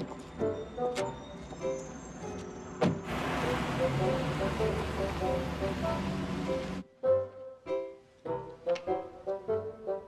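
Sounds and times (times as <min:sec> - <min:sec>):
car driving noise: 0:00.0 - 0:06.8
soft background music: 0:00.0 - 0:10.0.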